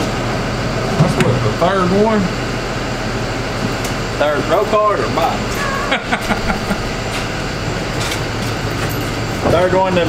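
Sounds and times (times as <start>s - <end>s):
mechanical drone: 4.2s - 10.0s
low hum: 5.4s - 9.3s.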